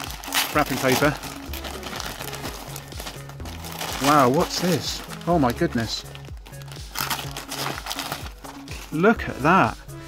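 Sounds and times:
wrapping paper crinkling: 0.0s - 9.2s
plastic bag rustling: 0.0s - 9.3s
background music with held notes: 0.0s - 10.0s.

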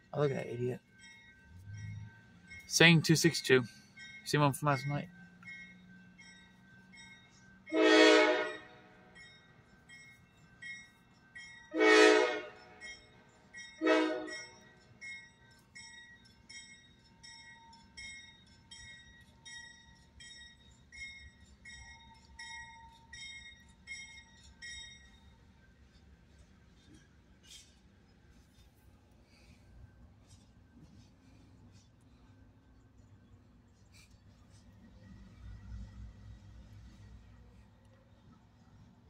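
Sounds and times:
crossing bell dinging: 0.0s - 25.5s
rumble of passing train: 0.0s - 39.0s
locomotive air horn blasts: 7.7s - 9.0s, 11.7s - 12.8s, 13.8s - 14.4s.

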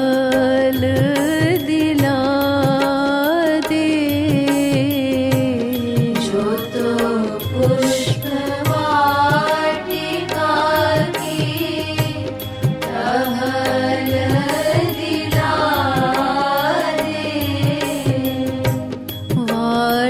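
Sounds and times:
instrumental accompaniment: 0.0s - 20.0s
person singing devotional song: 0.0s - 20.0s
steady drum beat: 0.2s - 20.0s.

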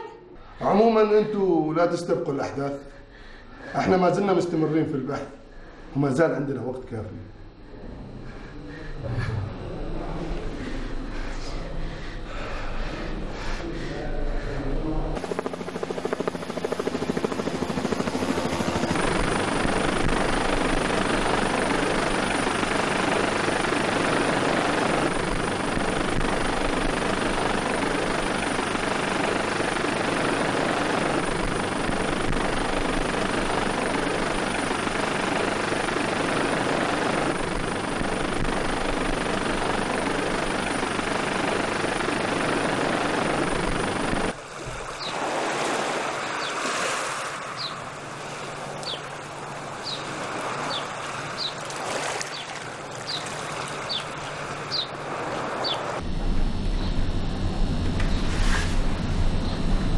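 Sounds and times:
helicopter rotor and engine: 9.7s - 59.9s.

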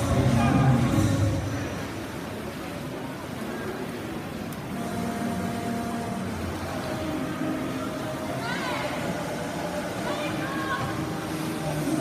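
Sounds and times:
spectator crowd noise: 0.0s - 12.0s.

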